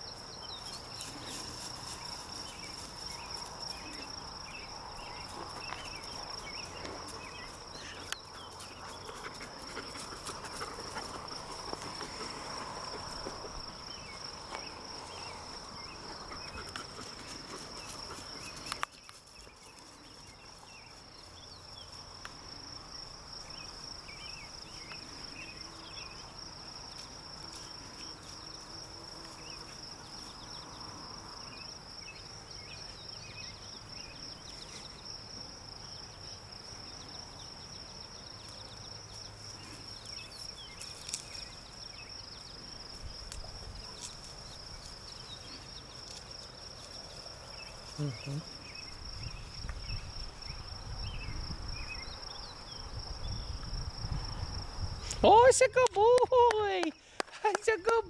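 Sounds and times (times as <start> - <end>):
insects chirring: 0.0 - 58.0.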